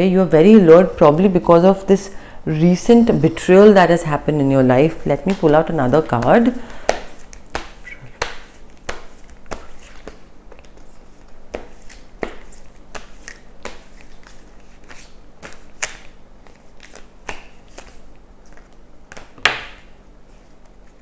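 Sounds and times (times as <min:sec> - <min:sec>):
cards being shuffled: 0:06.2 - 0:19.5.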